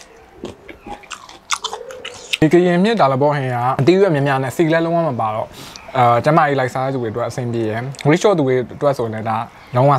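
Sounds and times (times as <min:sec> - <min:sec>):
person chewing with crisp crunches: 0:00.0 - 0:02.4.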